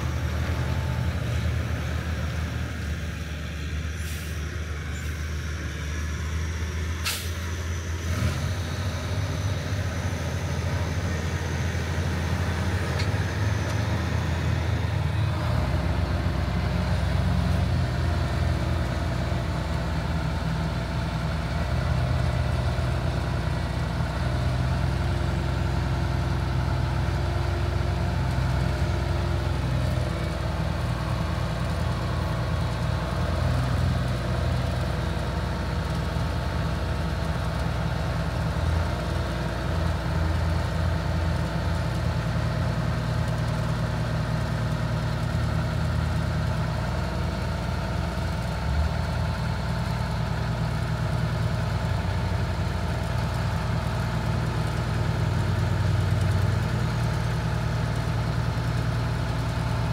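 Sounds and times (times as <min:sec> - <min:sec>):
diesel truck engine idling: 0:00.0 - 0:59.9.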